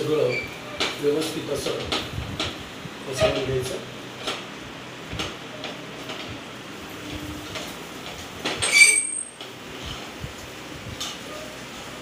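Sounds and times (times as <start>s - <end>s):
high-pitched metallic squeal: 8.6s - 9.4s.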